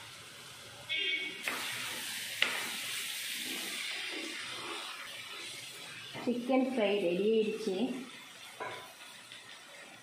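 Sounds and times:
food sizzling in a pan: 0.0s - 10.0s
spatula stirring and scraping: 2.4s - 7.0s, 8.1s - 10.0s.

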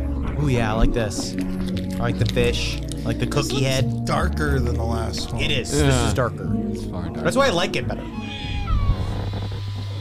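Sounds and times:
cat meowing: 8.0s - 9.7s.

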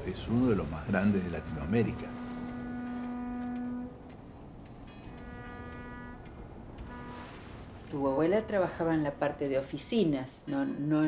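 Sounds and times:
ship's horn blast: 0.1s - 7.9s.

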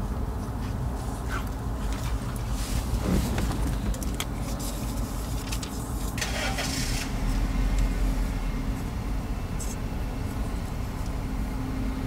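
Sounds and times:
car engine idling: 1.6s - 12.0s.

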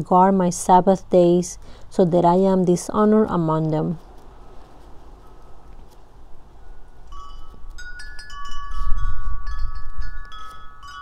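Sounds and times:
wind gust on microphone: 6.3s - 10.8s
wind chime ringing: 6.6s - 11.0s.

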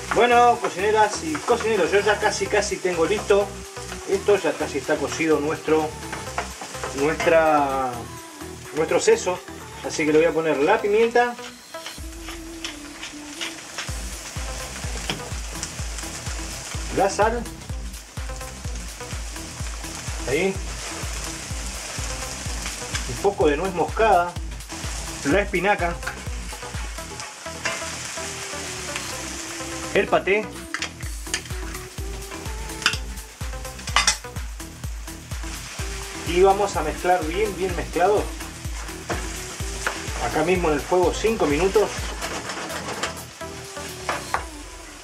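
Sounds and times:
wooden spoon scraping a pan: 0.0s - 5.3s, 10.7s - 15.3s, 19.4s - 23.4s, 24.7s - 29.4s, 35.5s - 44.4s
background music bass beat: 0.0s - 45.0s
food sizzling in a frying pan: 0.0s - 45.0s.

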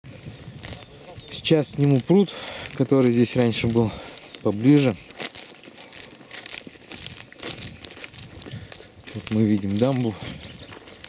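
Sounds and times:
footsteps in dry grass: 0.0s - 11.0s.

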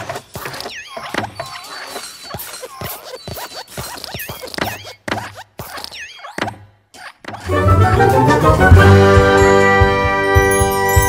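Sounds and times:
cartoon thumps and clicks: 0.0s - 7.5s
squeaky chirps: 0.0s - 7.5s.

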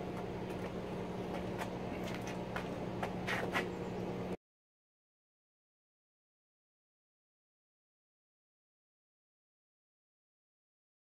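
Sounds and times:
steady low hum: 0.0s - 4.4s.

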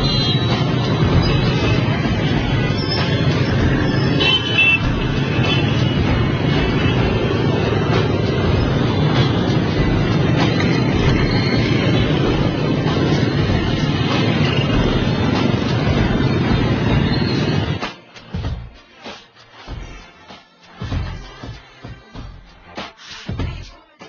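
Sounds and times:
motorbike traffic din: 0.0s - 17.8s.

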